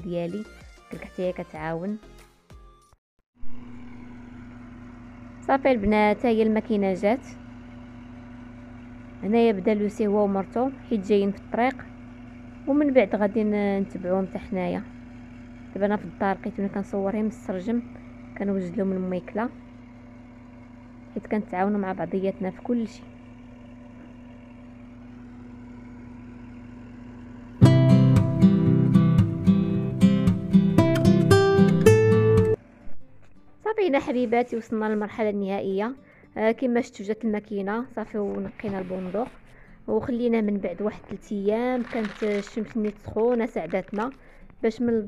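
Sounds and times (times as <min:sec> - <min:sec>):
tractor engine running: 0:03.5 - 0:35.3, 0:36.6 - 0:45.0.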